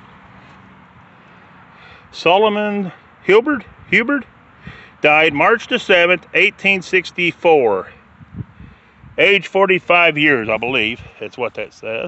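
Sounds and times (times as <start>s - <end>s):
distant road traffic hum: 0.0s - 12.0s.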